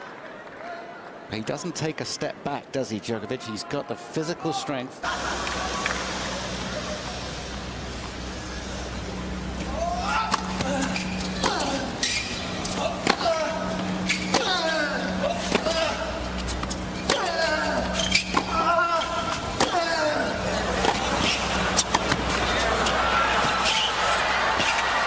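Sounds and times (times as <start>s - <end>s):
racket hitting tennis ball: 9.6s - 23.9s
player grunting: 9.7s - 12.0s, 12.7s - 16.3s, 17.0s - 21.2s.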